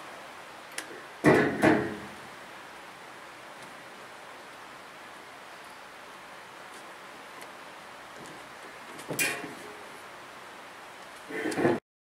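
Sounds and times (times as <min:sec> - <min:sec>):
faint hiss: 0:00.0 - 0:11.8.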